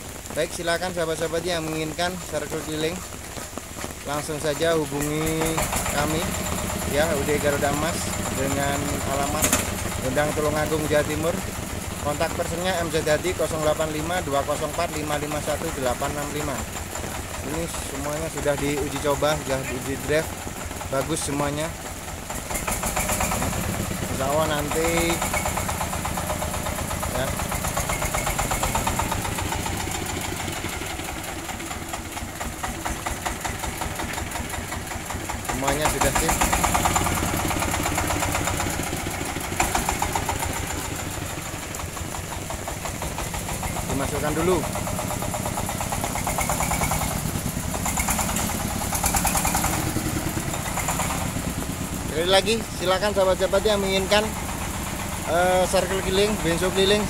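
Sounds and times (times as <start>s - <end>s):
diesel engine running: 0.0s - 57.0s
rain hissing: 0.0s - 57.0s.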